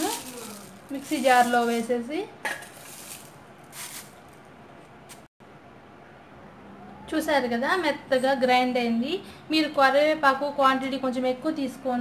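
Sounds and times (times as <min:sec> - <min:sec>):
soft rustle of leaves: 0:00.0 - 0:02.0, 0:02.6 - 0:04.5.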